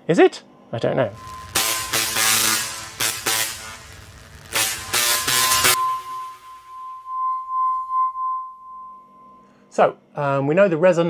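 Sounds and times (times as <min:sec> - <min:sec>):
loud crashing hits: 0:01.1 - 0:06.8
high pulsing pure tone: 0:01.1 - 0:09.7.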